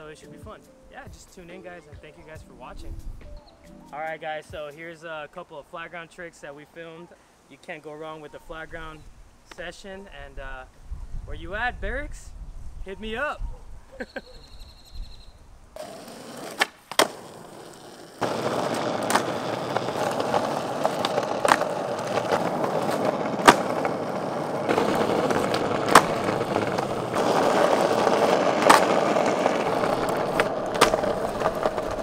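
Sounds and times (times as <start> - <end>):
skateboard tail popping and landing: 15.8 - 32.0
skateboard wheels rolling on asphalt: 15.8 - 32.0.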